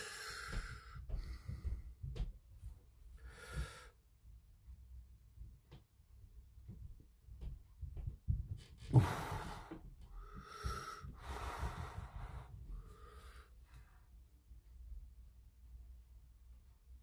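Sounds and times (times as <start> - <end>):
person breathing heavily: 0.0 - 2.0, 3.2 - 4.0, 8.8 - 13.9.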